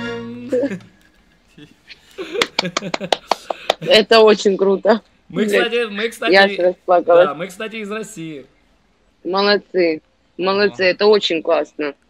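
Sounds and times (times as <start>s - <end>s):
faint voice: 0.0s - 0.9s
quick hand clapping: 2.3s - 3.9s.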